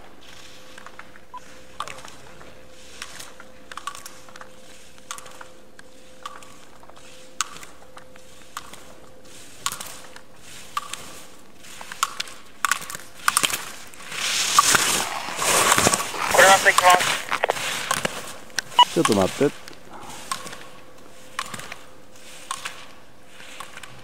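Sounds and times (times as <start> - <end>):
faint steady hum: 0.0 - 24.0
ski edges scraping on snow: 13.5 - 19.5.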